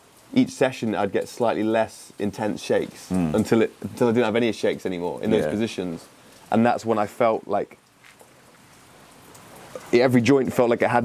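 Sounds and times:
faint rain falling: 0.0 - 11.0.

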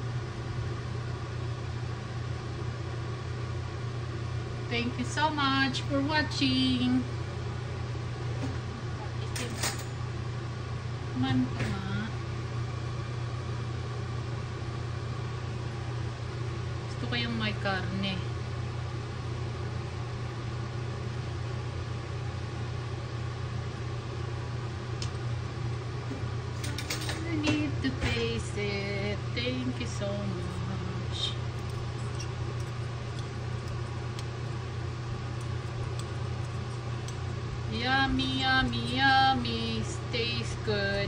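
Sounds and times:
low machine hum: 0.0 - 41.0.

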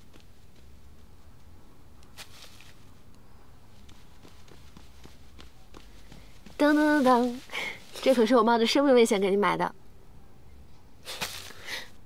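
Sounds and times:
soft footsteps on floor: 3.7 - 8.4.

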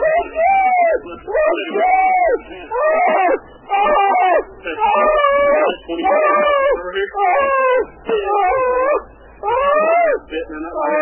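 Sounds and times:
high wailing cries: 0.0 - 11.0.

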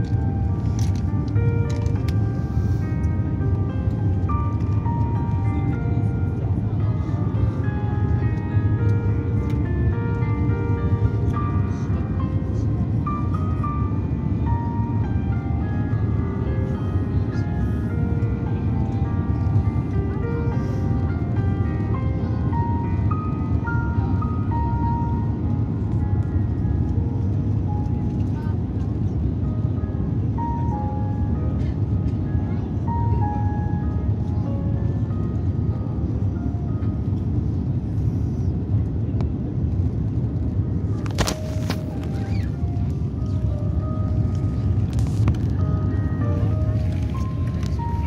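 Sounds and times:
jet engine cabin rumble: 0.0 - 48.0
simple melody: 0.0 - 48.0.

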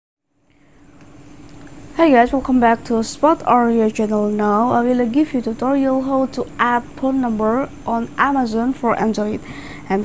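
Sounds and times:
faint steady hum with hiss: 0.3 - 10.0.

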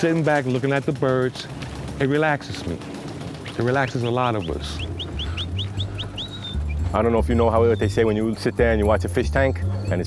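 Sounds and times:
steady low hum: 1.4 - 10.0
small bird chirping: 3.3 - 10.0.

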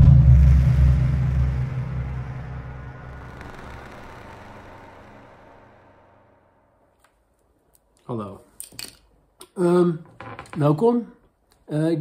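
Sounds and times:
deep rumble: 0.0 - 6.9.

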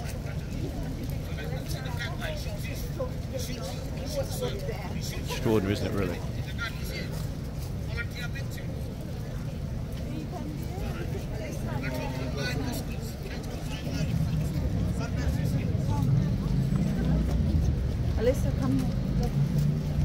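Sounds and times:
people chattering: 0.0 - 20.0
road traffic rumble: 0.0 - 20.0.

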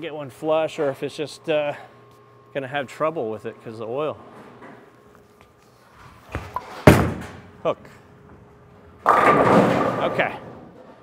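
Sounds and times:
bowling ball thud on lane: 6.4 - 7.4, 9.0 - 10.1
bowling pins crashing: 6.4 - 7.5, 9.0 - 11.0
bowling ball rolling: 8.3 - 11.0.

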